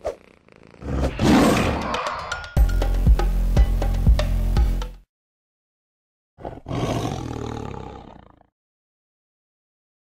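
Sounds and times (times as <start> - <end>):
tiger roaring: 0.8 - 2.2, 6.4 - 8.5.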